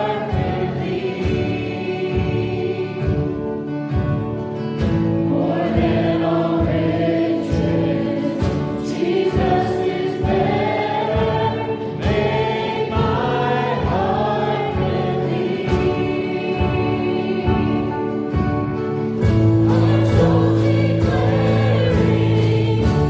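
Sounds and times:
acoustic guitar: 0.0s - 23.0s
drum kit beat: 0.0s - 23.0s
keyboard playing: 0.0s - 23.0s
people singing together: 0.0s - 23.0s.

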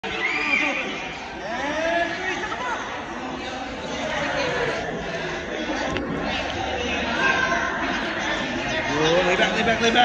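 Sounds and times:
children's voices echoing: 0.0s - 9.3s
indistinct chatter: 0.0s - 10.0s.

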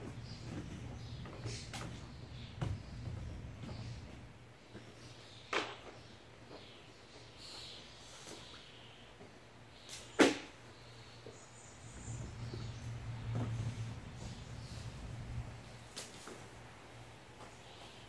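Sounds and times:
low steady hum: 10.6s - 18.0s.

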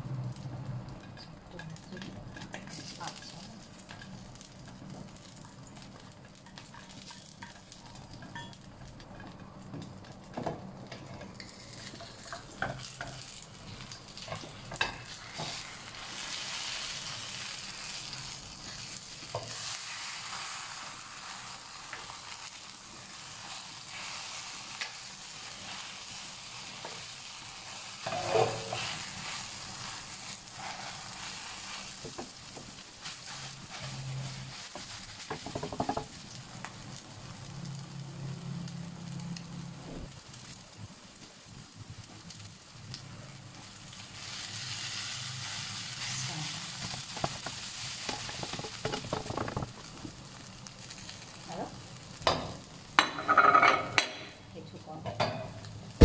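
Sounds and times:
omelette sizzling in oil: 0.0s - 54.6s
spatula scraping pan: 28.0s - 32.2s
spatula knocking on pan: 35.3s - 36.2s.

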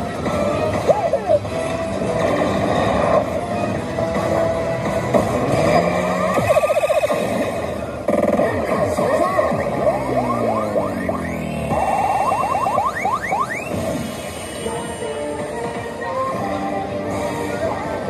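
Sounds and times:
slot machine effect music: 5.6s - 13.7s.

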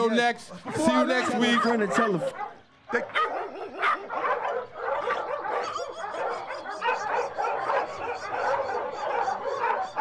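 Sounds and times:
dogs barking and yipping: 0.0s - 10.0s.

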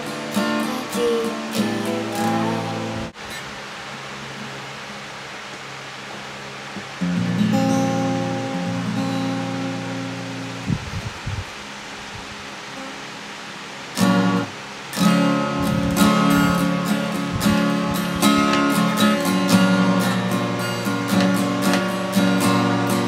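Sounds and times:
acoustic guitar strumming: 0.0s - 3.5s, 6.2s - 10.8s, 12.4s - 23.0s
steady hiss: 0.0s - 23.0s.

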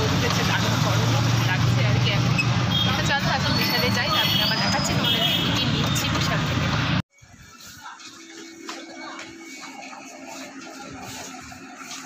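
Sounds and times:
woman talking: 2.9s - 6.9s.

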